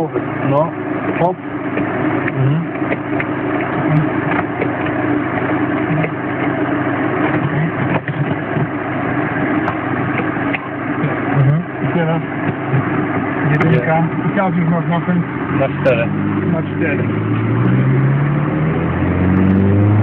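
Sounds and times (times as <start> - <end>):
car engine running: 0.0 - 20.0.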